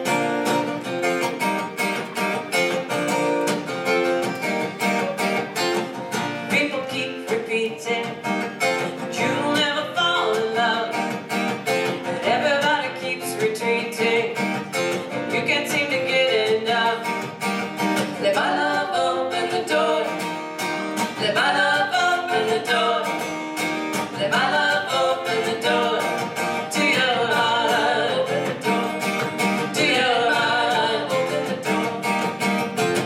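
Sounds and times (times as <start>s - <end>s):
acoustic guitar strumming: 0.0s - 33.0s
woman singing: 6.5s - 11.2s, 11.8s - 17.3s, 18.0s - 20.3s, 21.0s - 23.3s, 24.0s - 32.4s.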